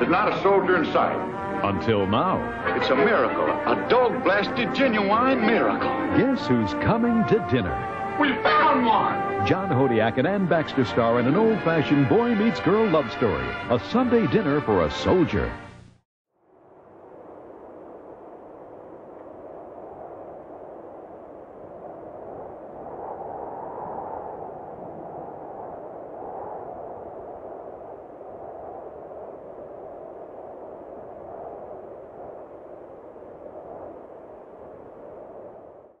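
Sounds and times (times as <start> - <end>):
airy rushing noise: 0.0 - 11.8.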